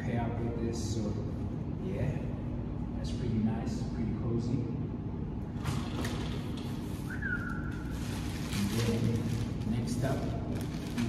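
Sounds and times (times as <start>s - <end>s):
steady low hum: 0.0s - 11.0s
fabric and plastic rustling: 5.8s - 11.0s.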